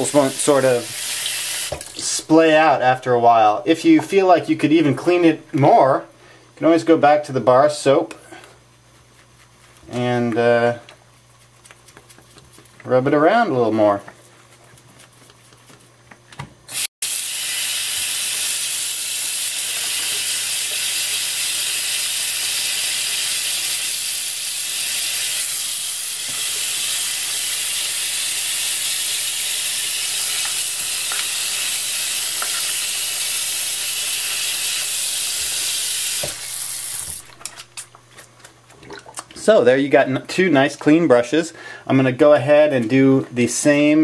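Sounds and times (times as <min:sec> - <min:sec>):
tap water running into sink: 0:00.0 - 0:02.0.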